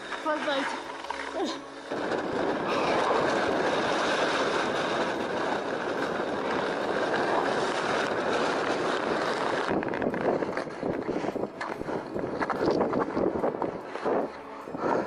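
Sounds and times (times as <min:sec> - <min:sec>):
wind buffeting microphone: 0:01.4 - 0:15.0.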